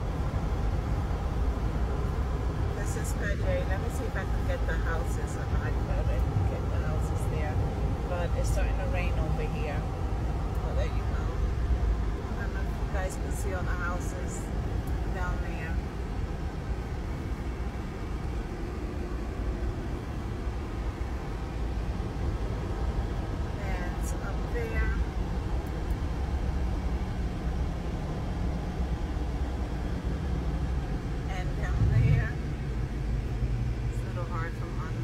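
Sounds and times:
car cabin road noise: 0.0s - 35.0s.

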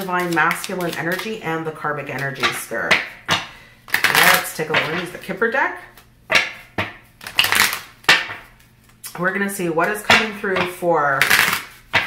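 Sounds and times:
cards being shuffled: 0.0s - 2.6s, 3.9s - 5.3s, 7.1s - 9.2s, 11.2s - 12.0s.

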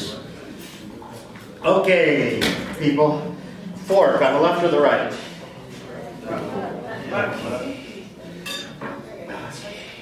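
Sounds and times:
fork clinking on tableware: 8.4s - 9.0s.

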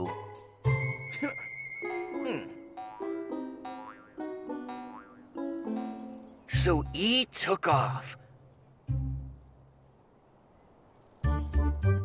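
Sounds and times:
plucked-string cartoon music: 0.0s - 7.2s, 8.9s - 9.4s, 11.2s - 12.0s
springy boing sound effects: 2.8s - 5.3s.

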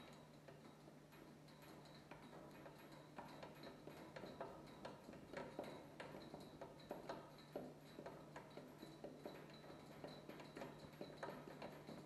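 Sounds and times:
faint irregular clicks: 0.0s - 12.0s.

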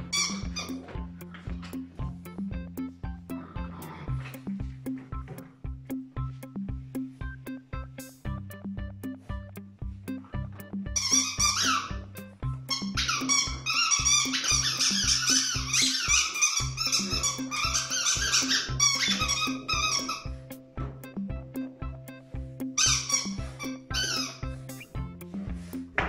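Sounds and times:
squeaky dog toy squeaking: 0.0s - 0.9s, 10.9s - 20.7s, 22.8s - 25.0s
music with a steady beat: 0.0s - 26.0s.

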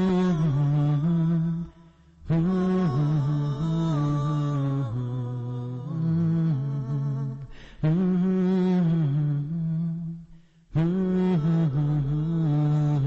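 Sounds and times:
low voice humming a melody: 0.0s - 10.2s, 10.8s - 13.0s.

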